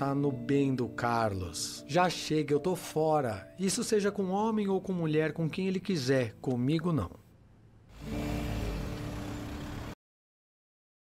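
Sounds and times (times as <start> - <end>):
road noise: 7.3 - 10.0
vehicle engine running: 7.9 - 10.0.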